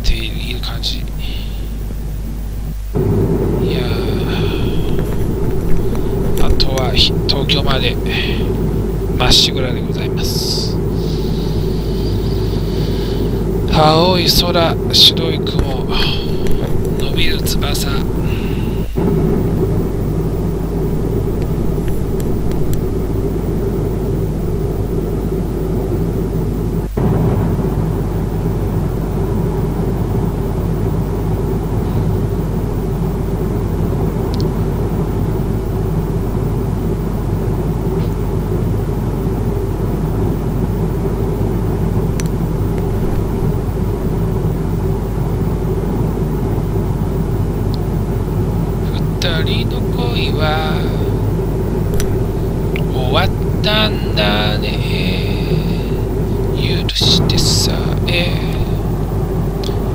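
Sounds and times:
jet airliner cabin noise: 0.0 - 59.9.

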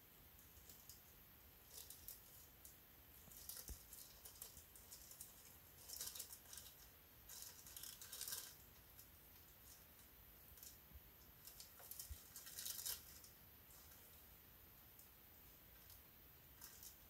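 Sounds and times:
plastic bag crinkling: 3.2 - 9.8, 11.4 - 14.2.

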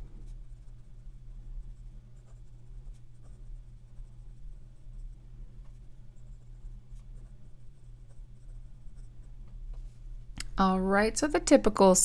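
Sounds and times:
steady low hum: 0.0 - 12.0
pen nib scratching on paper: 0.2 - 9.6.

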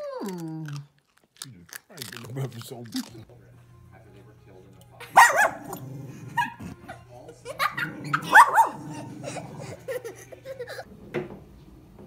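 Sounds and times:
small dog barking: 5.1 - 5.8, 7.6 - 9.1.

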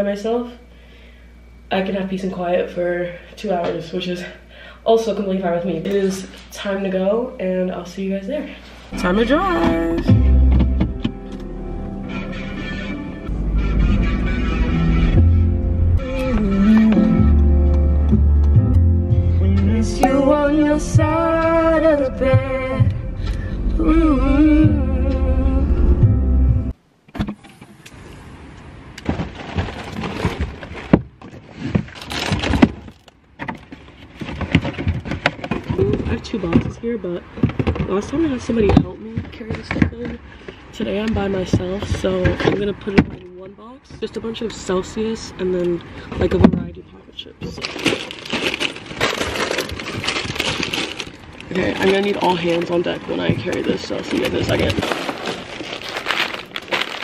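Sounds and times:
car rumble: 8.9 - 31.2, 34.4 - 57.0
song with singing: 16.0 - 17.9, 19.4 - 26.2
cardboard boxes rustling and knocking: 29.0 - 43.3, 47.4 - 57.0.

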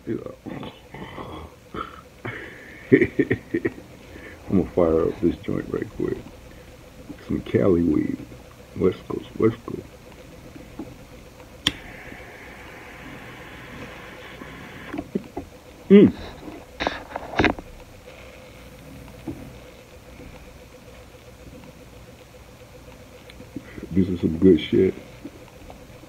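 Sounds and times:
person humming: 0.5 - 2.0
jet flame hissing: 8.8 - 20.6
torch lighter clicking on: 11.6 - 15.1.

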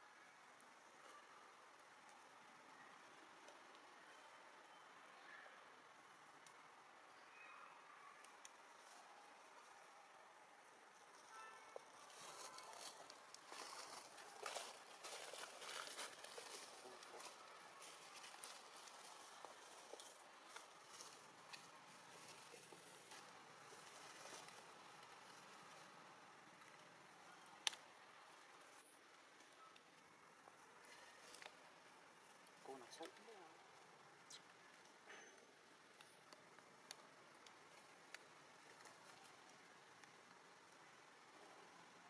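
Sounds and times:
soft rustles and clicks: 11.0 - 41.1.

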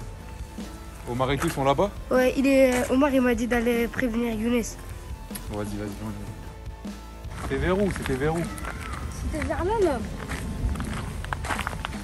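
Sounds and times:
footsteps on gravel: 6.9 - 12.0.

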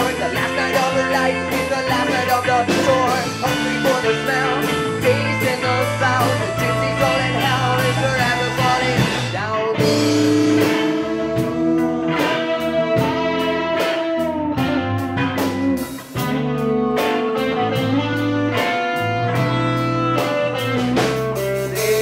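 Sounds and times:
bass guitar: 0.0 - 22.0
electric guitar sliding notes: 0.0 - 22.0
steady drum beat: 0.0 - 22.0.

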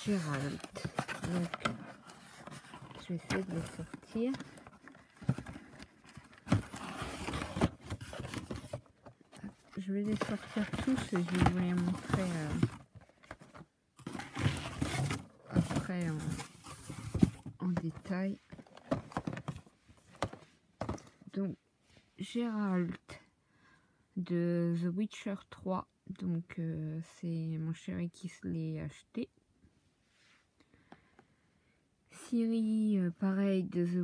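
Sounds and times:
boxes scraping and rustling: 0.0 - 21.2.

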